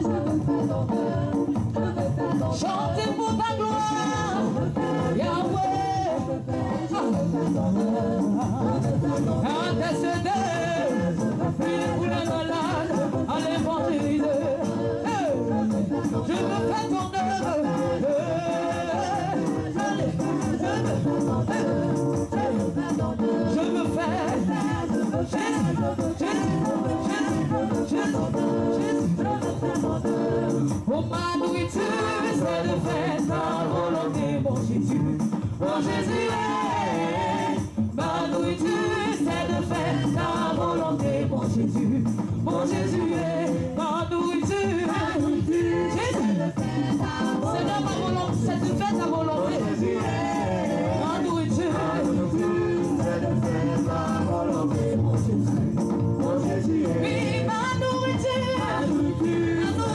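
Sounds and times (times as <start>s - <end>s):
steady backing music: 0.0s - 59.9s
voices singing a hymn: 0.0s - 59.9s.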